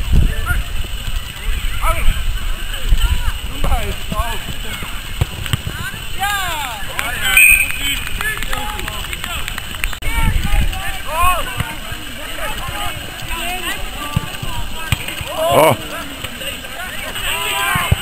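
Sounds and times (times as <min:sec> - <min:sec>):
players shouting: 0:05.8 - 0:18.0.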